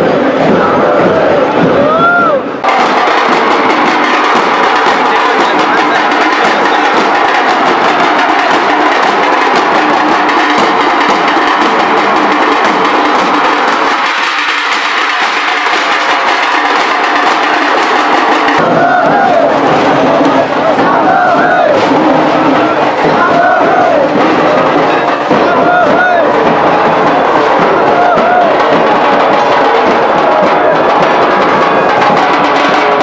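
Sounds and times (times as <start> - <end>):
crowd shouting and chanting: 0.0 - 33.0
drums beating driving rhythm: 0.0 - 33.0.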